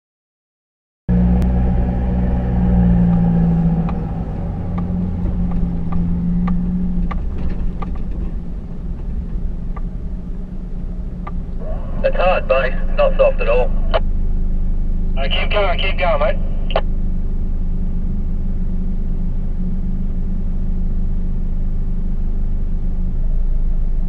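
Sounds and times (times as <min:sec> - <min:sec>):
car engine running: 0:01.1 - 0:24.0.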